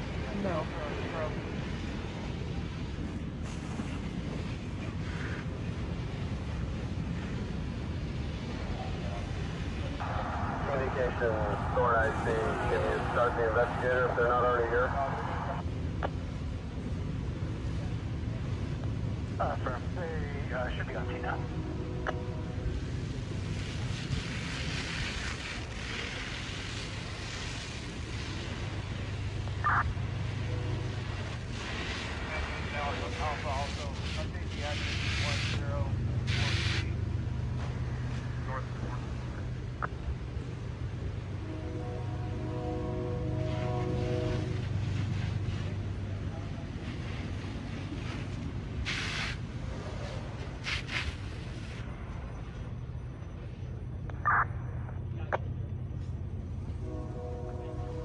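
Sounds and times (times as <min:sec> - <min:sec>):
constant hiss: 0:00.0 - 0:58.0
low hum of fire engines: 0:00.0 - 0:58.0
bursts of hiss: 0:36.2 - 0:37.0, 0:46.8 - 0:51.8.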